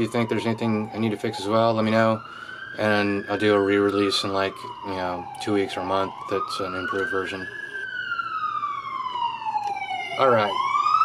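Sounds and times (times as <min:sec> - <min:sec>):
wailing siren: 0:00.0 - 0:11.0.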